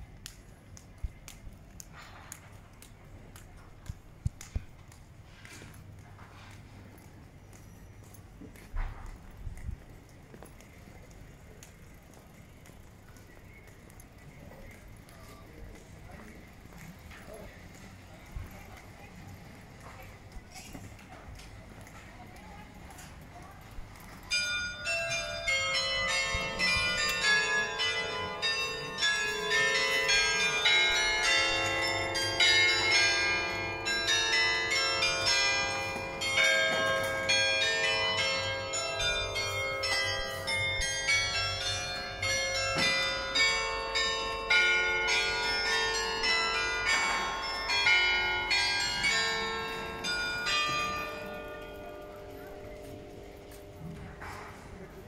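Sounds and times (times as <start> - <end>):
carillon bells playing a tune: 24.3 - 53.9.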